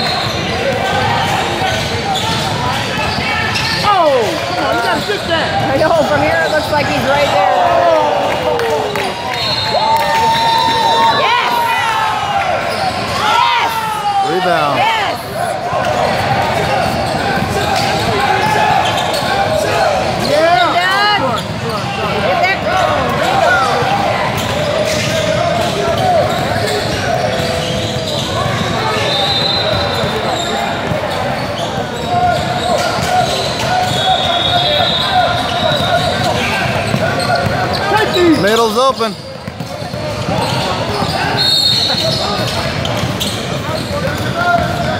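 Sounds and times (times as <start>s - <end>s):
sneakers squeaking: 0.0s - 44.9s
voices echoing in gym: 0.0s - 44.9s
basketball dribbling on hardwood: 39.4s - 41.1s.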